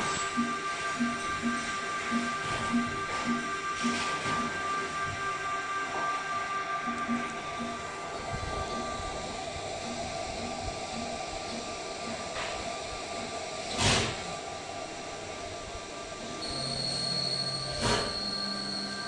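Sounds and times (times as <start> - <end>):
high steady tone: 0.0 - 13.4, 14.6 - 19.0
printer fans whirring: 0.0 - 19.0.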